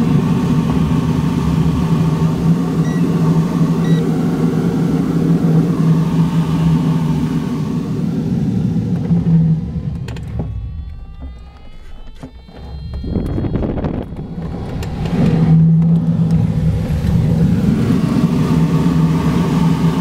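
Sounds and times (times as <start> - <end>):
rushing airflow around canopy: 0.0 - 10.9, 13.4 - 20.0
steady low hum: 0.0 - 20.0
short high beeps: 2.8 - 3.1, 3.8 - 4.0.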